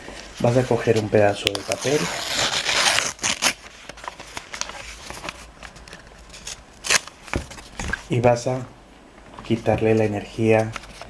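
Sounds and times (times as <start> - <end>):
paper rustling and sliding: 0.0 - 8.1.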